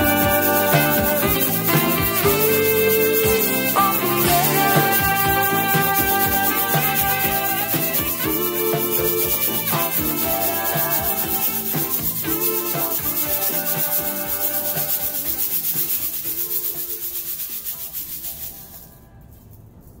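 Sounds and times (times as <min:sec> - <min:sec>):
pop song recording: 0:00.0 - 0:17.9
metal tube shaker rhythm: 0:00.0 - 0:19.0.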